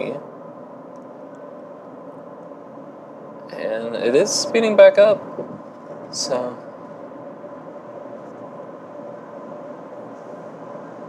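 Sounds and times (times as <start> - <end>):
road and tyre noise in car cabin: 0.0 - 11.0.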